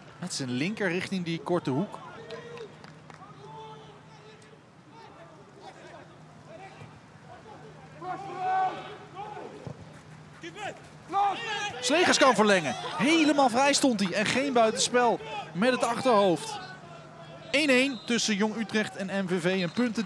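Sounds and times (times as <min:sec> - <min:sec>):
players shouting: 0:00.0 - 0:09.8, 0:10.4 - 0:20.0.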